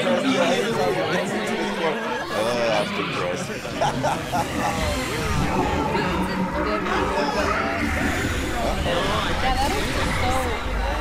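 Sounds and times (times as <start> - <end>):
several voices talking: 0.0 - 11.0
low rumble: 3.9 - 11.0.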